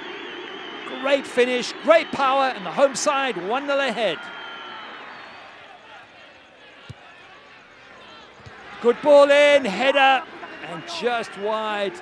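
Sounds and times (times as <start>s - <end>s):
sparse crowd: 0.0s - 12.0s
players shouting: 0.7s - 12.0s
ball being kicked: 6.8s - 7.1s.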